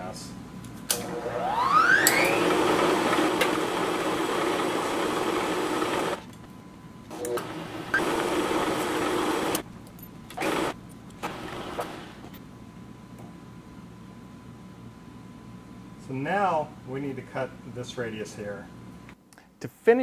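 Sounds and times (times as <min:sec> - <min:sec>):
milling machine motor whine: 0:01.0 - 0:06.3, 0:07.1 - 0:09.6, 0:10.4 - 0:12.3.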